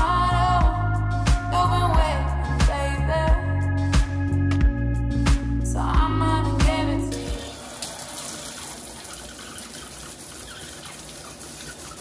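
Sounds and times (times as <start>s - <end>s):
music with a beat: 0.0s - 7.5s
water spraying from shower head: 7.1s - 12.0s.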